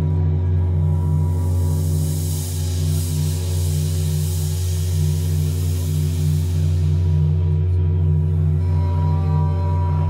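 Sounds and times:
deep bass drone: 0.0 - 10.0
hissing noise layer: 1.2 - 8.5.

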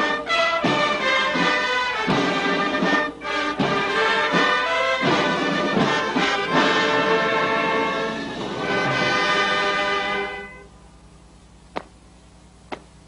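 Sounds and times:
brass band music: 0.0 - 10.7.

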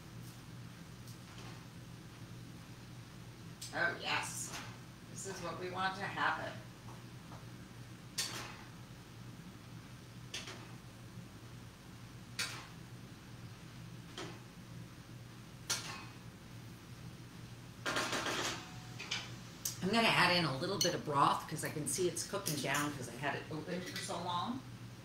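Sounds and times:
steady low hum: 0.0 - 25.0.

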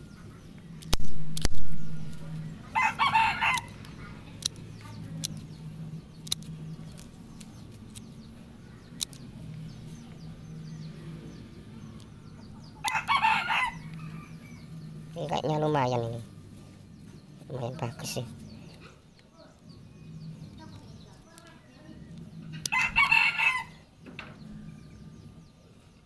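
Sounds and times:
steady low hum: 0.0 - 26.0
pruning shears clicking: 0.7 - 8.2, 8.8 - 9.7.

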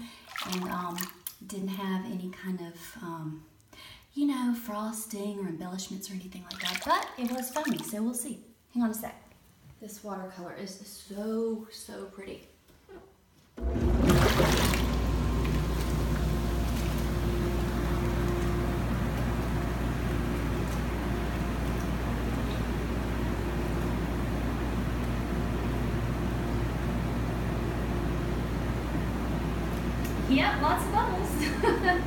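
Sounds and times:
water churning through jets: 0.0 - 1.2, 6.4 - 8.0, 13.6 - 23.1
jet pump motor hum: 13.6 - 32.0.

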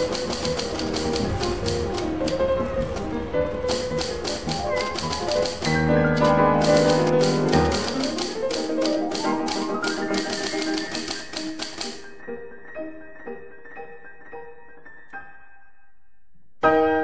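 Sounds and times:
typewriter key clicks: 0.0 - 2.4, 3.7 - 12.0
background music with held tones: 0.0 - 17.0.

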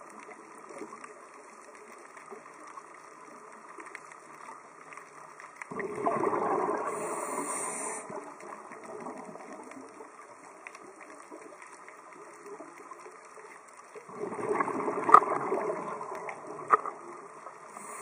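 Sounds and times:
exhaled bubbles rushing: 5.7 - 10.0, 14.0 - 17.7
scuba breathing hiss: 6.6 - 8.4, 17.6 - 18.0.

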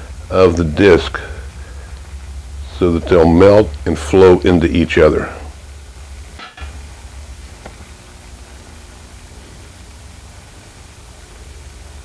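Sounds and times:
low hum: 0.0 - 12.0
torch flame hissing: 0.0 - 12.0.

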